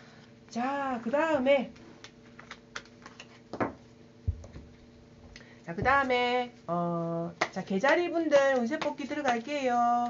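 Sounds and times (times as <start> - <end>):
cards clicking and tapping on table: 2.0 - 4.6.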